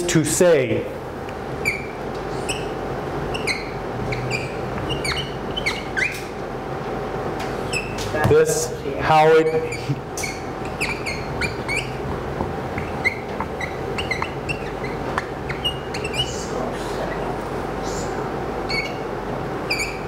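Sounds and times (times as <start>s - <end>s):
steady room hum: 0.0s - 20.0s
whiteboard marker squeaking: 1.6s - 6.4s, 7.6s - 8.1s, 9.2s - 17.4s, 18.6s - 20.0s.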